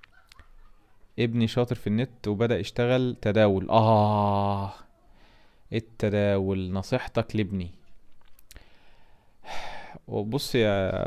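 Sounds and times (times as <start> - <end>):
mouth click: 8.2 - 8.7
man sighing: 9.4 - 10.0.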